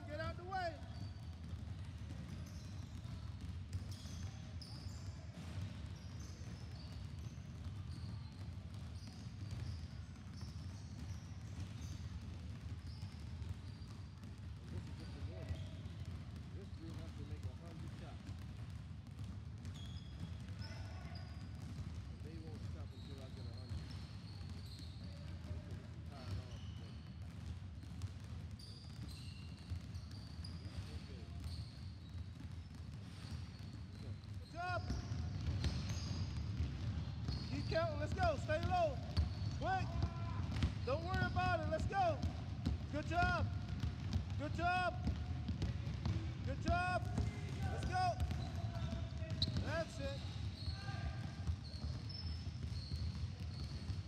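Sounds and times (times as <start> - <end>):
basketballs bouncing on wooden floor: 0.0 - 54.0.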